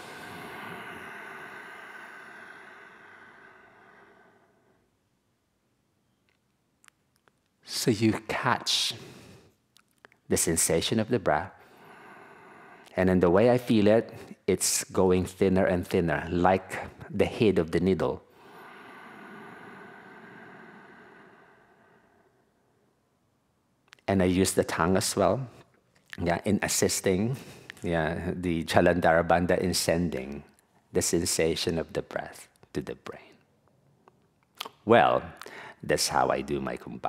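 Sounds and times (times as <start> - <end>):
slow breath into microphone: 0.0 - 4.8, 18.3 - 22.7.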